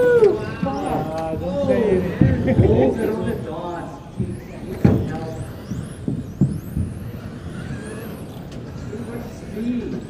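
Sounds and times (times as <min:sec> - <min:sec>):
electric motors whining: 0:00.0 - 0:10.0
low thumps: 0:00.0 - 0:10.0.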